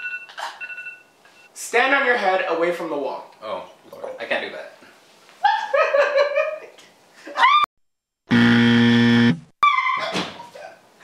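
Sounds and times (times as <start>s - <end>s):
game-show buzzer: 8.3s - 9.5s.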